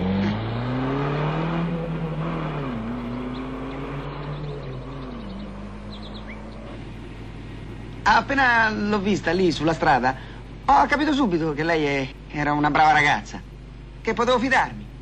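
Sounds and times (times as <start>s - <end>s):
car engine accelerating through gears: 0.0s - 8.1s.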